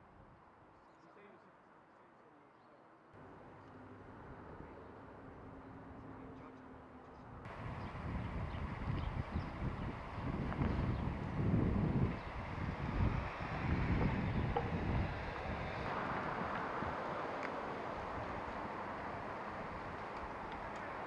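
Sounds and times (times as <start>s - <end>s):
outdoor noise: 0.0s - 21.0s
wind buffeting microphone: 7.3s - 21.0s.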